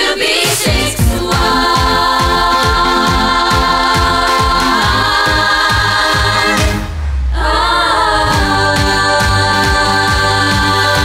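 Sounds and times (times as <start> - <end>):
female voices singing harmonies: 0.0 - 11.0
pop backing track with kick drum: 0.2 - 11.0
deep bass swell: 3.2 - 11.0.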